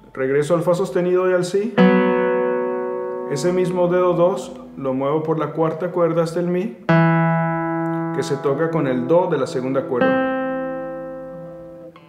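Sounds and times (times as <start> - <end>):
classical guitar notes plucked: 1.7 - 5.7, 6.8 - 12.0.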